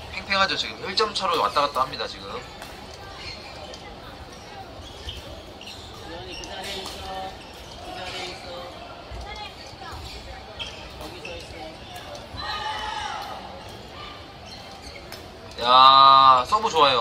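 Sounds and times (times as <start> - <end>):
players' voices echoing: 0.0 - 17.0.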